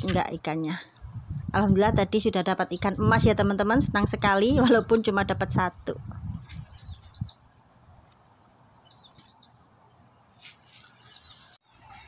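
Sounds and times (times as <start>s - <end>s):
small birds chirping: 1.8s - 11.7s.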